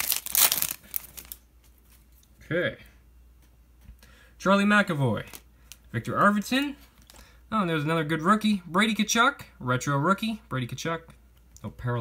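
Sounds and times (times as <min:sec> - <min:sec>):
plastic wrapper crinkling: 0:00.0 - 0:02.3, 0:05.2 - 0:07.3.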